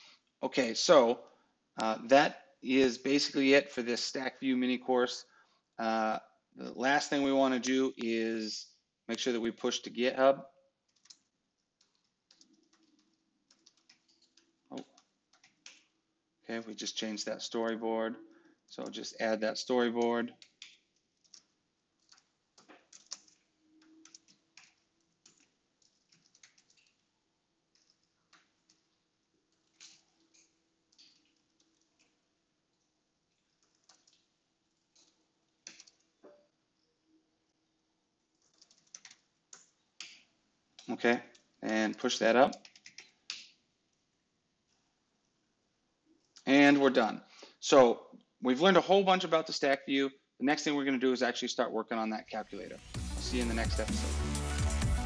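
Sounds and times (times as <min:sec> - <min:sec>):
faint keyboard typing: 0:10.7 - 0:45.4.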